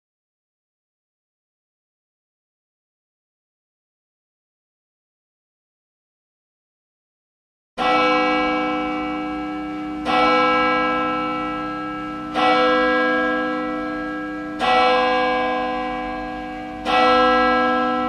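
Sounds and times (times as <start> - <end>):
church bell tolling: 7.8 - 18.0.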